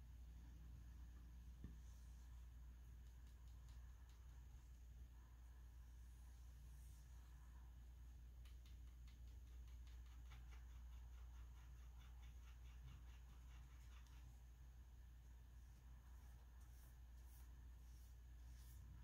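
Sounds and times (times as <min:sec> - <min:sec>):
low steady hum: 0:00.0 - 0:19.0
paintbrush scrubbing in paint pan: 0:15.6 - 0:19.0.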